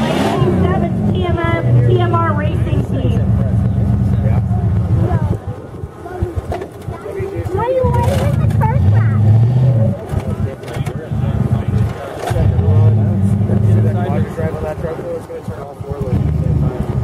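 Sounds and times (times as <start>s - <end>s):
engine revving: 0.0s - 5.4s, 7.6s - 17.0s.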